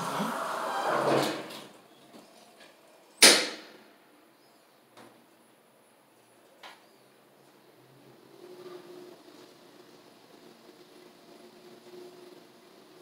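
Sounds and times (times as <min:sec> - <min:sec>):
elevator doors sliding shut: 0:00.0 - 0:01.8.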